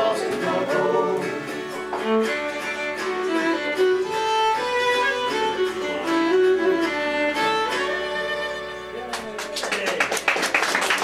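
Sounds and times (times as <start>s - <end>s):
fiddle playing folk tune: 0.0s - 9.5s.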